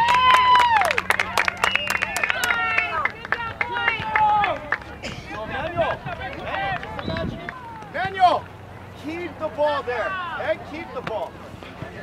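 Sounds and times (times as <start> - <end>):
hand clapping: 0.0 - 5.0
people shouting and cheering: 0.0 - 12.0.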